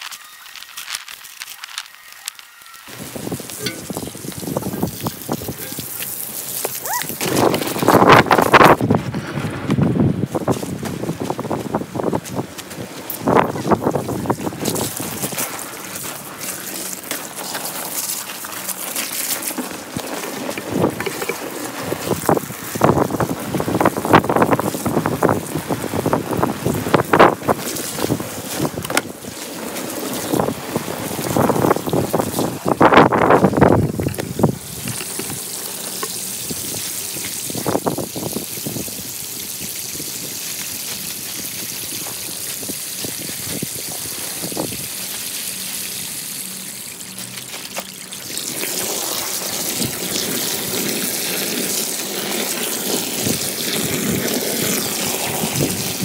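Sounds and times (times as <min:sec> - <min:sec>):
hose water pouring into pool: 0:00.0 - 0:56.0.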